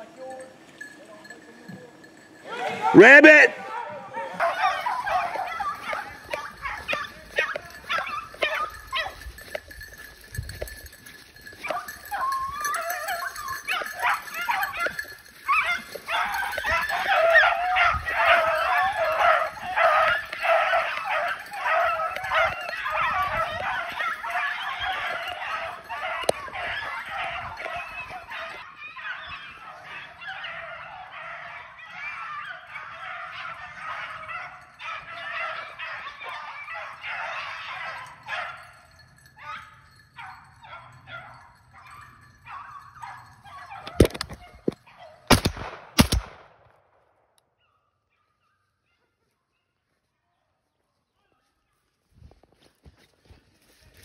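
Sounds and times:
hounds baying: 0.0s - 45.3s
dogs yipping: 2.0s - 45.3s.

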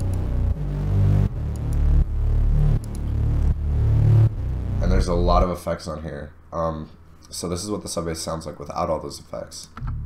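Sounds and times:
distorted pulsing sub-bass: 0.0s - 5.8s.

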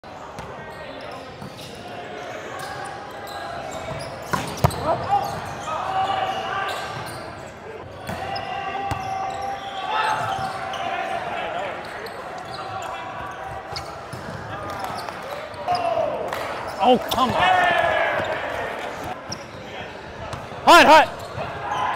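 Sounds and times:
players calling out: 4.6s - 19.2s, 20.6s - 21.9s.

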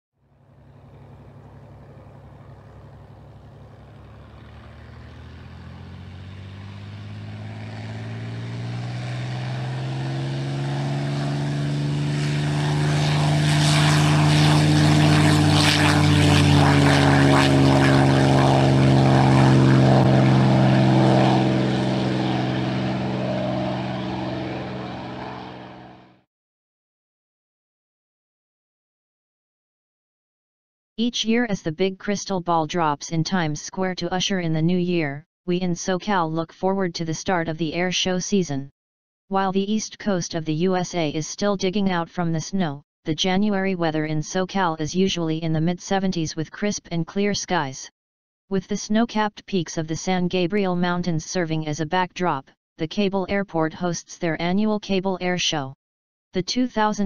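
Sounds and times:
propeller airplane engine passing: 0.2s - 26.2s.

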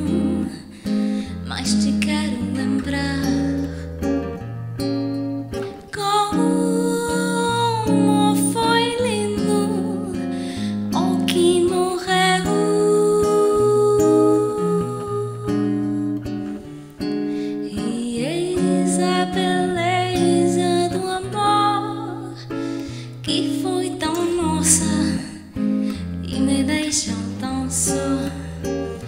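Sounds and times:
woman singing: 0.0s - 3.9s, 5.6s - 16.8s, 17.4s - 29.0s
nylon-string guitar bossa nova: 0.0s - 29.0s.

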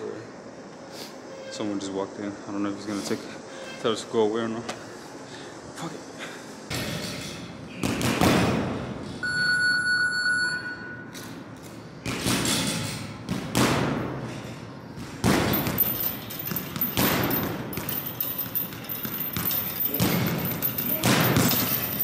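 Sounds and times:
boxing gloves hitting punching bags: 6.7s - 9.0s, 12.0s - 14.4s, 15.0s - 22.0s.

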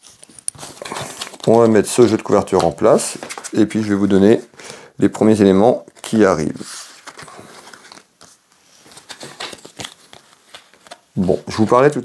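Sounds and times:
playing cards rustling: 0.0s - 4.5s, 5.8s - 11.9s.

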